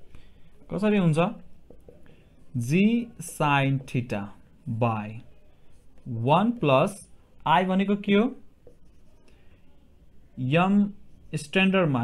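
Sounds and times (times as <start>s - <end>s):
marker writing on whiteboard: 0.2s - 9.6s, 10.4s - 12.0s
person speaking: 0.5s - 9.6s.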